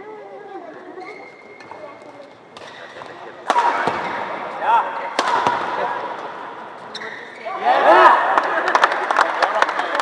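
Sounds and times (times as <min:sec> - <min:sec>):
murmur of spectators: 0:00.0 - 0:10.0
racket hitting shuttlecock: 0:02.6 - 0:04.4, 0:05.0 - 0:06.3.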